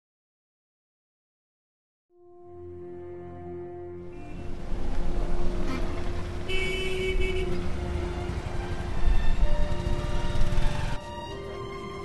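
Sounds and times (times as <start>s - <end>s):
vehicle horn: 2.1s - 4.8s, 5.4s - 10.6s
traffic rumble: 3.8s - 12.0s.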